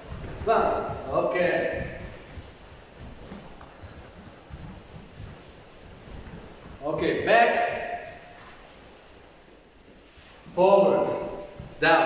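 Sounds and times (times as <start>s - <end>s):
bare feet thudding on foam mats: 0.0s - 12.0s.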